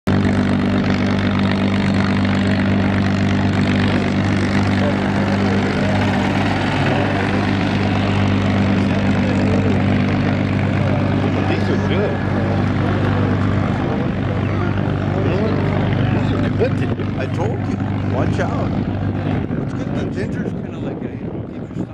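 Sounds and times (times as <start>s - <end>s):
faint voices: 0.1s - 21.9s
propeller aircraft engine idling: 0.1s - 21.9s.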